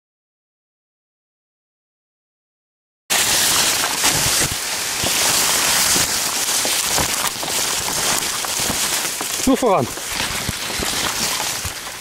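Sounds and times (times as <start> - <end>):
stalks and leaves rustling: 3.1 - 12.0.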